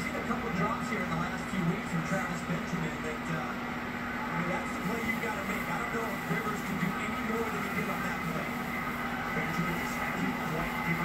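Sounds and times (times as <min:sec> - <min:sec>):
aquarium air pump humming: 0:00.0 - 0:11.0
muffled television voices: 0:00.0 - 0:11.0.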